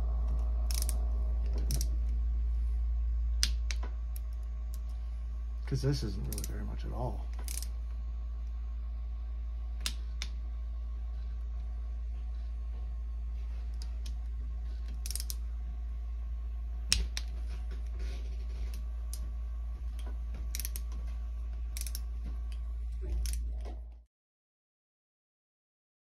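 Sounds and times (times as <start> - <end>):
steady low hum: 0.0 - 24.1
socket wrench clicking: 0.7 - 1.0, 1.7 - 1.9, 7.4 - 7.7, 15.0 - 15.4, 20.5 - 20.9, 21.8 - 22.1, 23.2 - 23.5.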